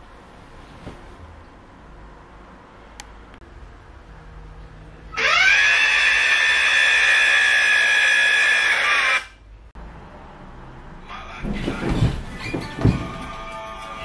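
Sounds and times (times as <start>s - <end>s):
rustling: 0.3s - 1.3s, 11.4s - 13.4s
thumps: 11.4s - 13.5s.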